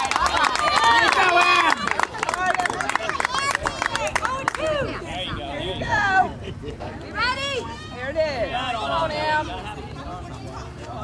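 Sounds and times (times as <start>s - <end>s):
young voices shouting and chanting: 0.0s - 11.0s.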